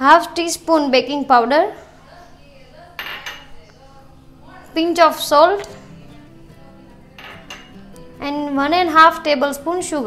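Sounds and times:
glass bowl clinking on steel bowl: 3.0s - 3.6s, 7.2s - 7.9s.

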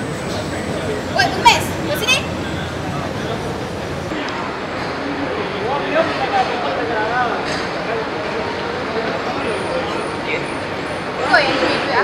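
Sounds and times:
traffic hum: 0.0s - 4.2s
faint indistinct voices: 0.0s - 12.0s.

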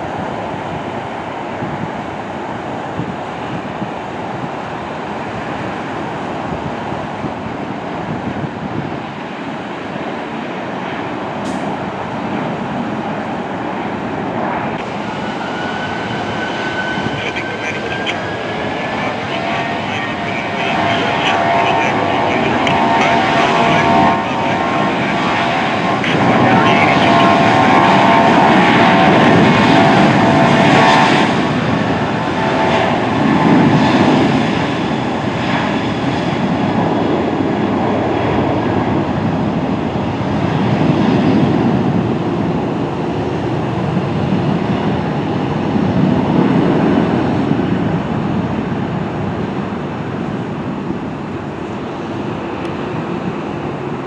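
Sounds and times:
jet engines spooling up: 10.2s - 38.9s.

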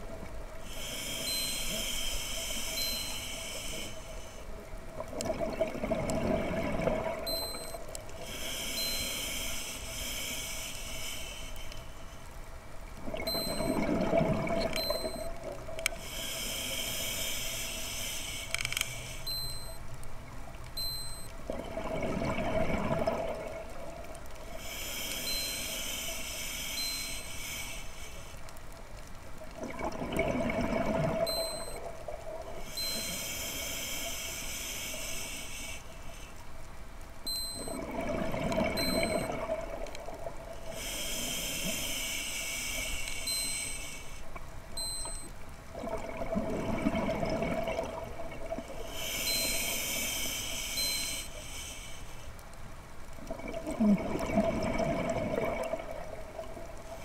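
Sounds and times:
hissing regulator inhale: 0.6s - 4.5s, 7.4s - 12.2s, 16.0s - 19.7s, 24.6s - 28.4s, 32.6s - 36.4s, 40.7s - 44.3s, 48.8s - 52.3s
bubbling exhale underwater: 5.0s - 7.4s, 13.0s - 15.6s, 21.5s - 24.0s, 29.6s - 32.7s, 37.5s - 40.5s, 45.7s - 50.0s, 53.3s - 57.0s.

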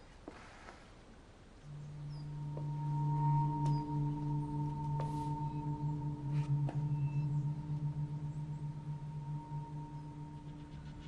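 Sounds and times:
droning score tones: 1.6s - 11.0s
high ringing tone: 1.6s - 11.0s.

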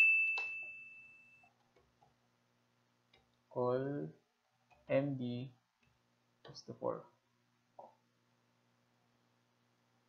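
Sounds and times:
bright bell-like ding: 0.0s - 1.4s.

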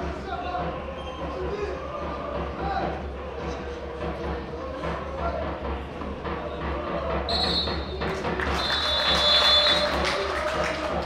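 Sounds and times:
music: 0.0s - 11.0s
stadium crowd noise: 0.0s - 11.0s
high whistle blasts: 7.3s - 10.0s.

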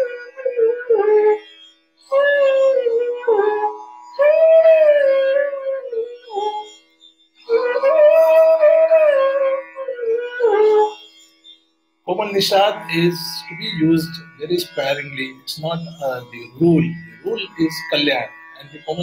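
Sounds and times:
bamboo flute melody: 0.0s - 6.8s, 7.4s - 11.2s, 12.1s - 19.0s
faint steady drone: 12.0s - 19.0s.

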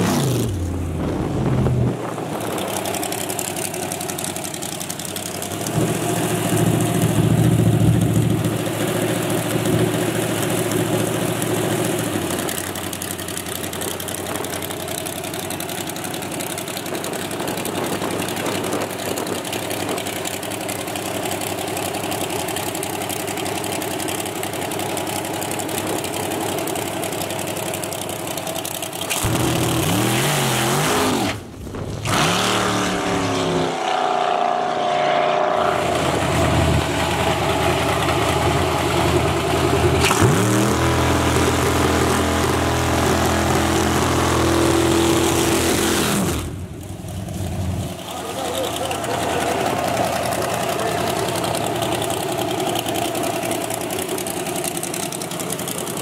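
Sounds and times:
pickup engine idling: 0.6s - 29.6s, 35.7s - 40.3s, 46.5s - 56.0s.

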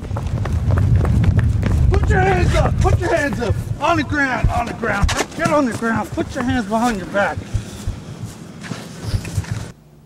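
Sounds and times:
heavy low rumble: 0.0s - 5.1s, 6.0s - 8.4s
running footsteps on pavement: 0.0s - 9.7s
man shouting: 1.9s - 7.4s.

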